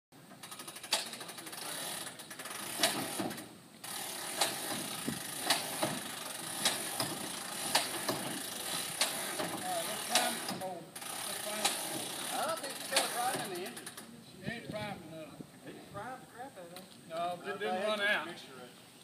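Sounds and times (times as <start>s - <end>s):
sharp mechanical click: 0.4s - 1.3s, 2.3s - 3.4s, 5.4s - 6.0s, 6.6s - 8.2s, 10.1s - 10.6s, 12.9s - 14.1s.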